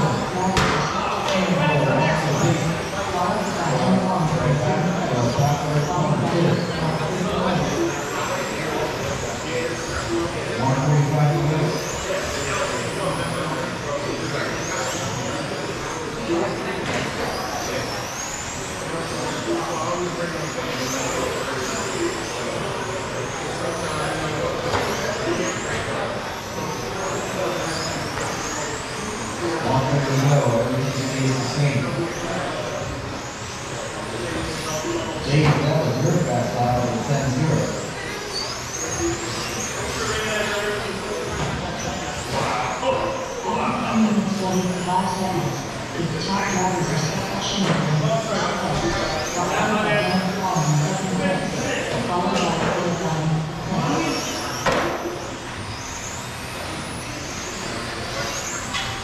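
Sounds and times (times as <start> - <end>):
electric rc cars whining: 0.0 - 59.0
voices: 0.0 - 59.0.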